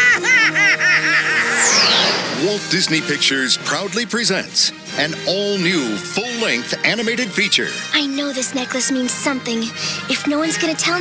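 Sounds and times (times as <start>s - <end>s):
cartoon character cackling laugh: 0.0s - 1.5s
high falling swoosh: 1.2s - 3.2s
trailer music: 1.2s - 4.0s.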